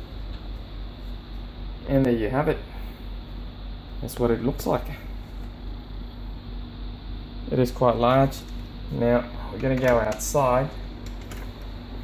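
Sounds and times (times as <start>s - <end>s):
faint steady hum: 0.0s - 12.0s
low rumble and hiss: 0.0s - 12.0s.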